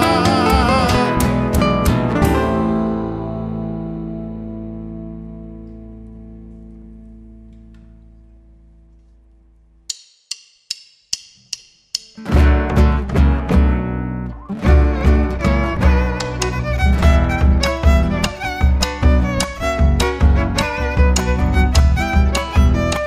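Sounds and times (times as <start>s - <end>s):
folk band playing: 0.0s - 3.0s, 14.5s - 23.0s.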